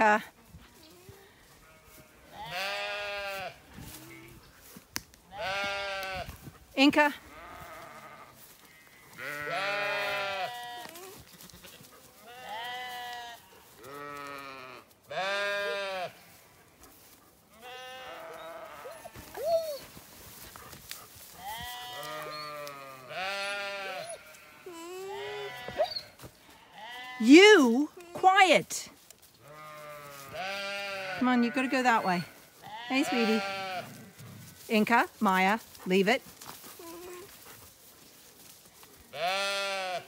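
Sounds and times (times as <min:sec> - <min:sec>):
baby alpaca calling: 0:00.8 - 0:04.4, 0:05.3 - 0:06.3, 0:07.0 - 0:11.2, 0:12.2 - 0:16.3, 0:17.6 - 0:20.0, 0:21.4 - 0:28.6, 0:29.4 - 0:36.1, 0:36.7 - 0:37.4, 0:39.1 - 0:40.0.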